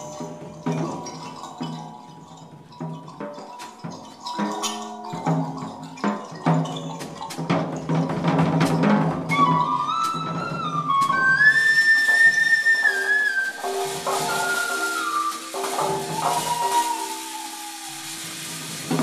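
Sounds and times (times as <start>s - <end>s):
percussion hits: 0.0s - 19.0s
wooden flute held notes: 9.2s - 19.0s.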